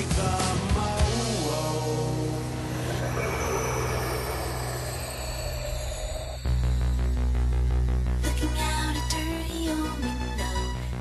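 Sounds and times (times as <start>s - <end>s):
low rumbling drone: 1.1s - 9.0s
hissing wash: 2.1s - 7.0s.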